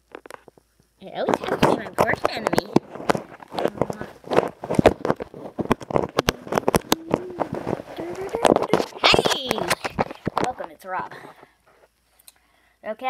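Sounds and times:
person's voice: 0:01.0 - 0:02.8, 0:03.6 - 0:04.2, 0:06.2 - 0:11.3
phone being handled: 0:01.4 - 0:10.6.

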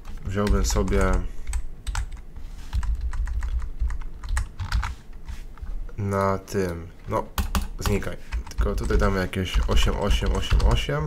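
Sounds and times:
typing on computer keyboard: 0:00.0 - 0:04.9, 0:07.4 - 0:10.8.

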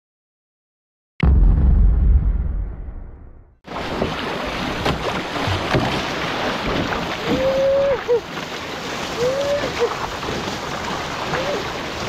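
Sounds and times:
water splashing along canoe hull: 0:03.7 - 0:12.0.

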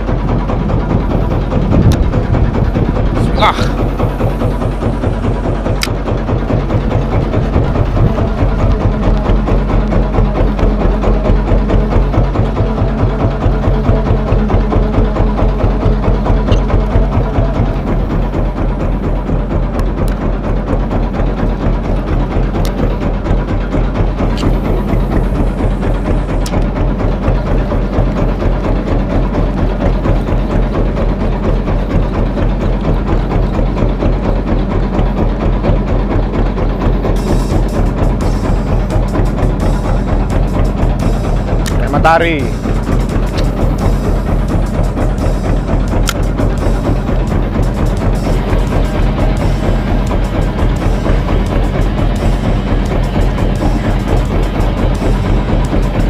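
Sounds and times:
boat engine thudding: 0:00.0 - 0:56.0.

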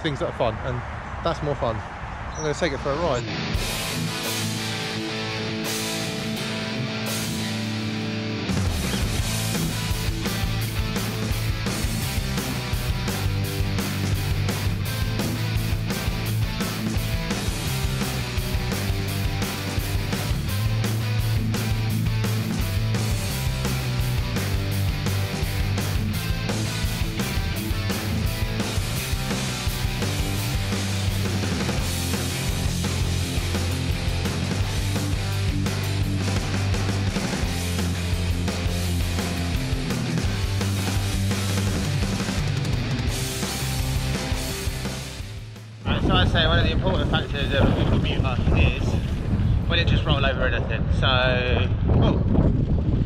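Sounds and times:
rock music with guitar: 0:03.2 - 0:47.0
drum beat and bass: 0:03.2 - 0:48.8.

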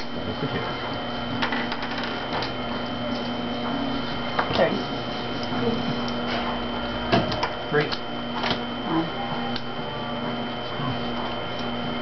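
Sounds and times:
high-pitched whine: 0:00.0 - 0:12.0.

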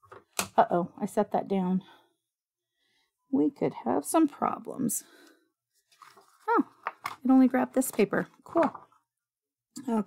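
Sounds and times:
paper sheets rustling: 0:05.8 - 0:07.0.

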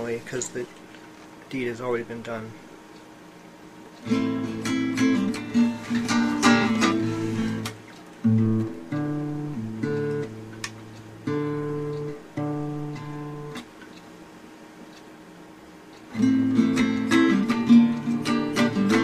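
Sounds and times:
acoustic guitar strumming chords: 0:04.0 - 0:13.8, 0:16.1 - 0:19.0.

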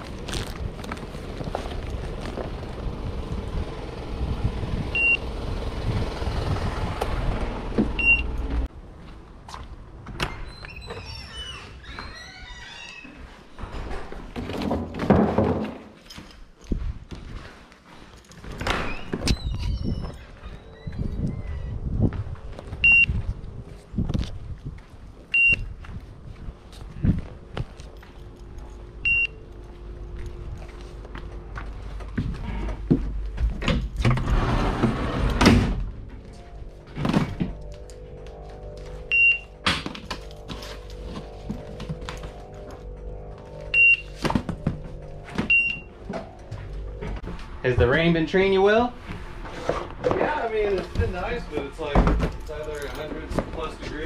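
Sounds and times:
wind on microphone: 0:19.2 - 0:27.7.

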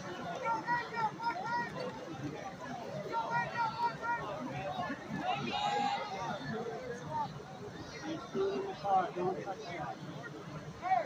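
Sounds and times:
murmur of crowd chatter: 0:00.0 - 0:11.0
voices talking at a distance: 0:00.0 - 0:11.0.

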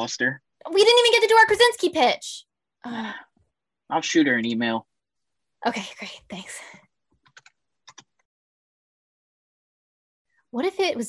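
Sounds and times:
computer keyboard clicks: 0:07.2 - 0:08.2.

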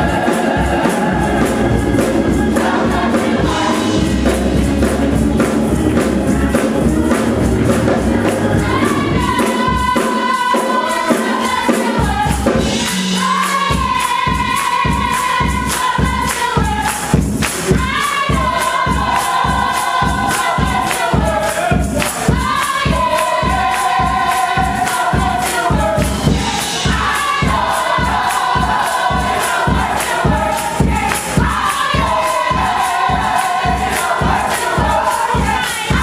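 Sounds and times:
choir singing gospel: 0:00.0 - 0:36.0
rhythmic hand claps: 0:00.0 - 0:36.0.

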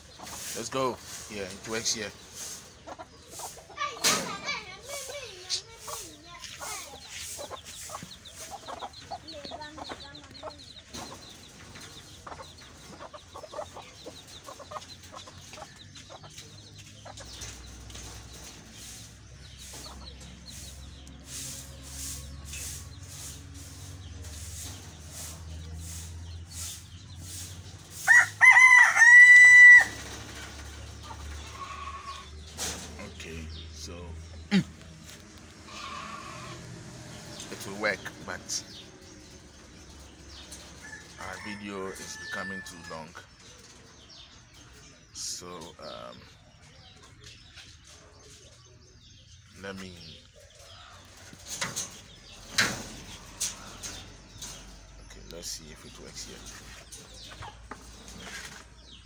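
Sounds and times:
chicken clucking: 0:00.0 - 0:33.6, 0:34.3 - 0:59.0
bird calls: 0:00.0 - 0:59.0
rooster crowing: 0:28.1 - 0:30.0.

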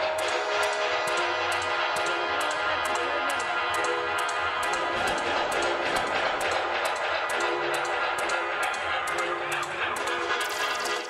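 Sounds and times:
dub music through a sound system: 0:00.0 - 0:11.0.

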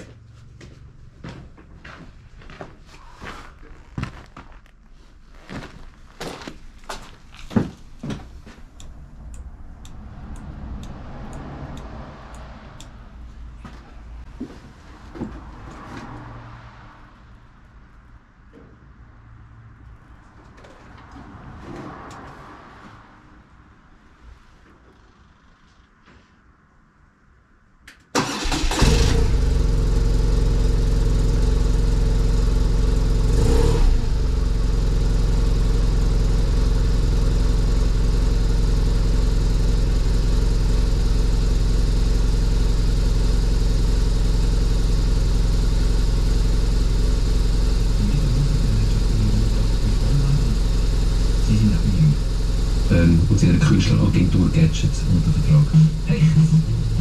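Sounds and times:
motorcycle engine starting and idling: 0:28.1 - 0:57.0.

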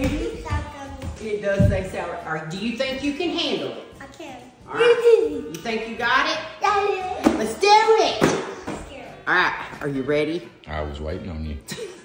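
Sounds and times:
child talking: 0:00.1 - 0:01.2, 0:04.0 - 0:05.5, 0:06.6 - 0:09.3
woman talking: 0:01.1 - 0:03.7.

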